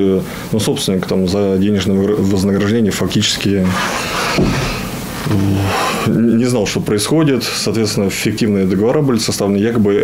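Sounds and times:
man saying uh: 5.3s - 8.1s.

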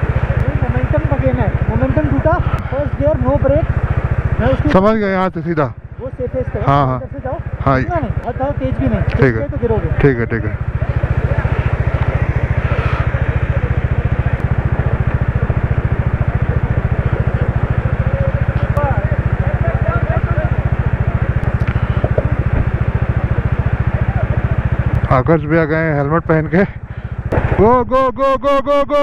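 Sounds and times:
distant voices calling: 0.0s - 29.0s
motorcycle engine idling: 0.0s - 29.0s.

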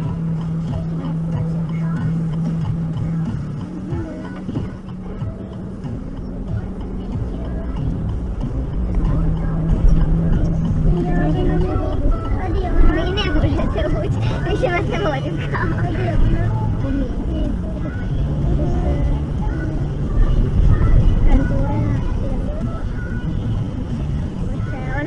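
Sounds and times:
car engine and tyres rumble: 0.0s - 25.0s
indistinct talking: 0.0s - 25.0s.

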